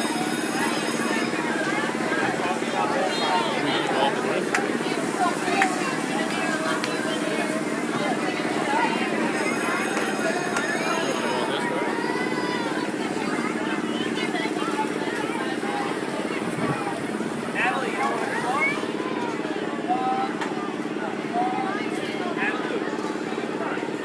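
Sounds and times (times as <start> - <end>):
amusement ride mechanical drone: 0.0 - 24.0
children chattering: 0.0 - 24.0
people's voices: 0.0 - 24.0.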